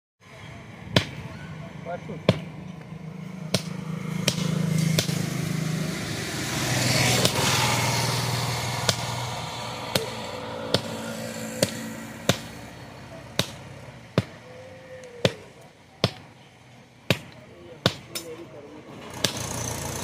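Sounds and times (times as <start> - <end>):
vehicle engine passing: 0.2 - 20.0
hammer blows on metal anvil: 9.9 - 14.4.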